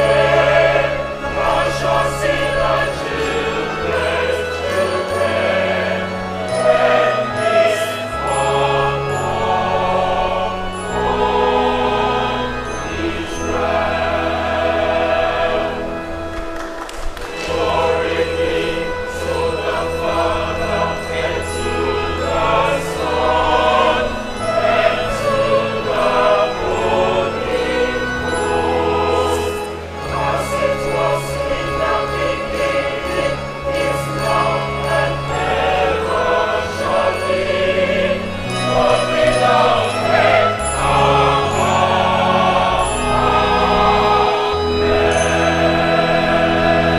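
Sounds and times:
low held accompaniment notes: 0:00.0 - 0:46.9
mixed choir singing: 0:00.0 - 0:46.9.

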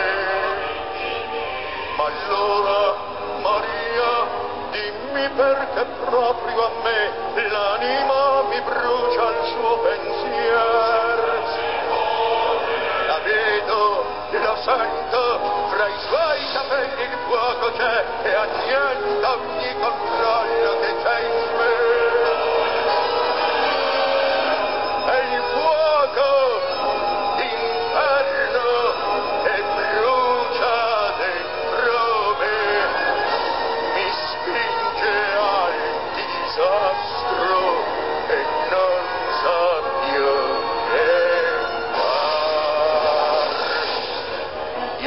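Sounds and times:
man singing long note: 0:00.0 - 0:44.0
orchestral accompaniment: 0:06.0 - 0:45.0.

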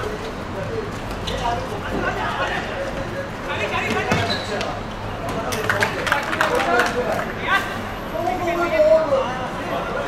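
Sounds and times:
football kicked and bouncing: 0:03.8 - 0:04.4.

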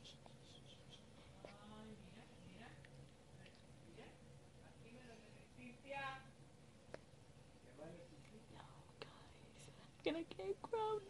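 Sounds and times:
faint whispering: 0:00.0 - 0:02.6, 0:08.5 - 0:10.0
low steady hum: 0:00.0 - 0:11.0.

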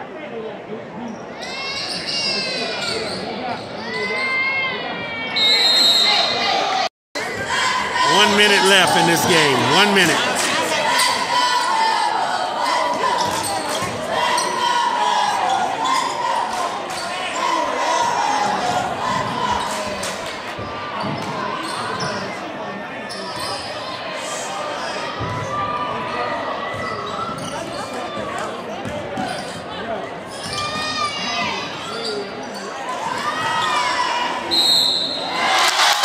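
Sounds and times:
voices of players and spectators: 0:00.0 - 0:36.0.

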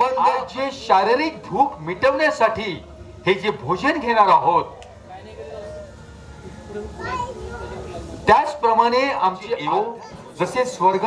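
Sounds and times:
steady low rumble: 0:00.0 - 0:09.4
background chatter of guests: 0:00.0 - 0:11.0
children's voices: 0:05.5 - 0:08.2, 0:09.8 - 0:10.5.

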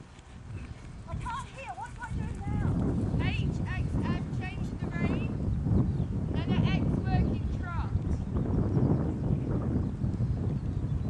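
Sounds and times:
horse hoofbeats on sand: 0:00.0 - 0:04.6.

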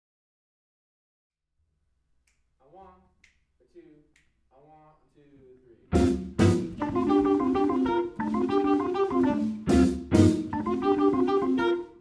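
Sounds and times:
finger snap: 0:02.2 - 0:02.5, 0:03.2 - 0:03.5, 0:04.1 - 0:04.4.

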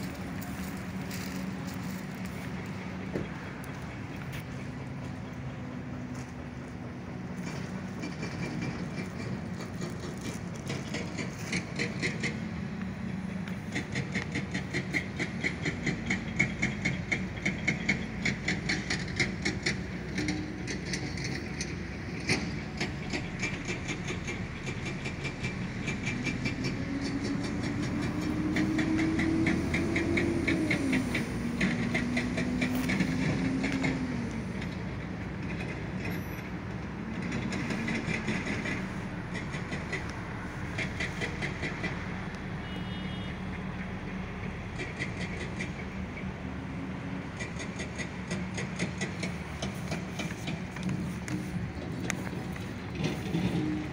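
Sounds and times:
vehicle passing: 0:00.0 - 0:53.9.

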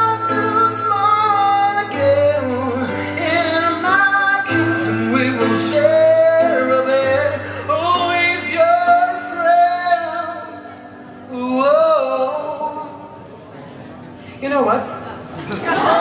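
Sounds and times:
high male vocal singing: 0:00.0 - 0:13.3.

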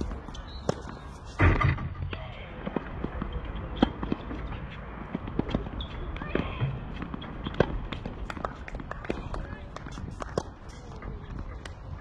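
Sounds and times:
tennis balls struck and bouncing: 0:00.0 - 0:12.0.

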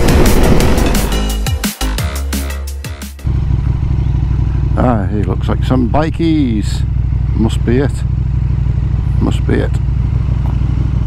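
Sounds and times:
drum and bass music: 0:00.0 - 0:08.0
motorcycle engine idling: 0:03.2 - 0:11.0
man's voice: 0:04.6 - 0:08.1, 0:09.2 - 0:09.8.

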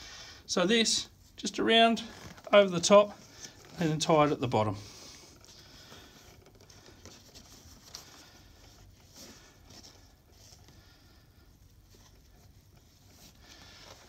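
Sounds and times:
cloth bandage rustling: 0:00.8 - 0:14.0.

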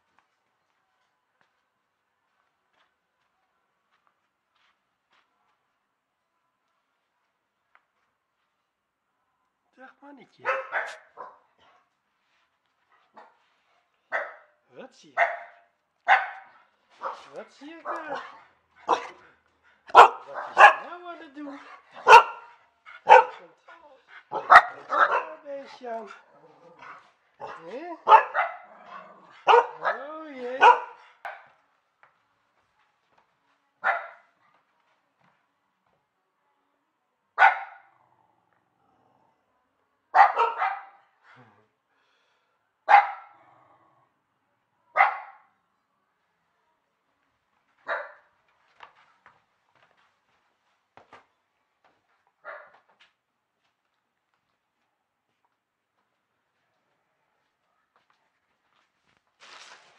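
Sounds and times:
dog barking: 0:10.4 - 0:11.9, 0:14.1 - 0:14.6, 0:15.2 - 0:19.2, 0:19.9 - 0:21.0, 0:21.6 - 0:23.6, 0:24.2 - 0:25.4, 0:26.1 - 0:31.6, 0:33.8 - 0:34.4, 0:37.4 - 0:38.0, 0:40.1 - 0:41.1, 0:42.8 - 0:43.4, 0:44.9 - 0:45.5, 0:47.9 - 0:48.3, 0:52.4 - 0:52.8.

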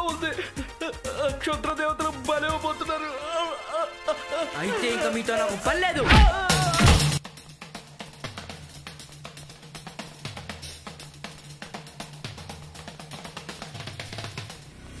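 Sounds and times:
drum-kit beat: 0:00.0 - 0:02.7, 0:05.6 - 0:14.7
bass line: 0:05.7 - 0:07.2.

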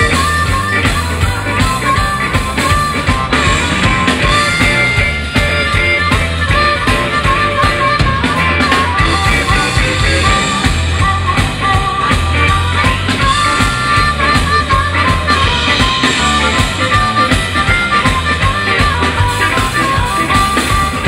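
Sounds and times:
blues band playing: 0:00.0 - 0:21.0
harmonica solo: 0:00.0 - 0:21.0.

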